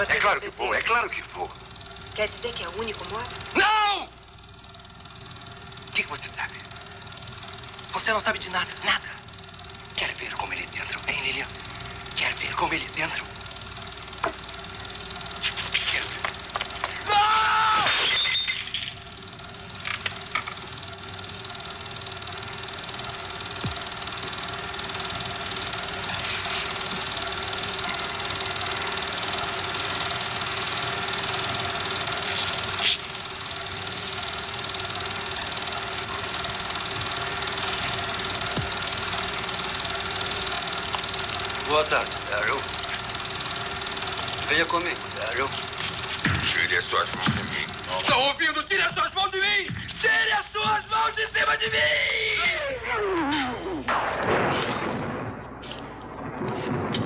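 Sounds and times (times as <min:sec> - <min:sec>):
steady mechanical drone: 0:00.0 - 0:57.0
voice crying out: 0:17.0 - 0:17.9, 0:52.2 - 0:53.9.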